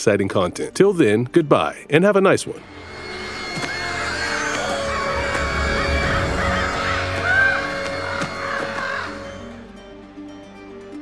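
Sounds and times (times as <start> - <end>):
low musical drone: 2.5 - 10.2
bird calls: 2.7 - 9.5.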